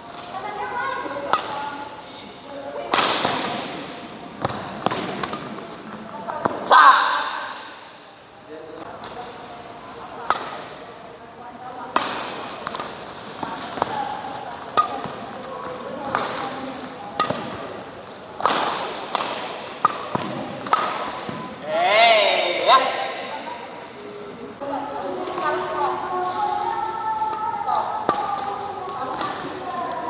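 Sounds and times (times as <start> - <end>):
racket hitting shuttlecock: 1.2 - 1.6, 2.9 - 5.6, 10.2 - 10.8, 11.9 - 17.8, 18.4 - 21.4.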